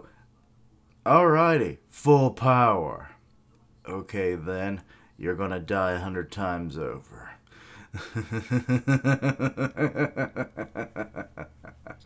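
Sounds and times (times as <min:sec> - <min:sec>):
man chuckling: 0:07.8 - 0:12.0.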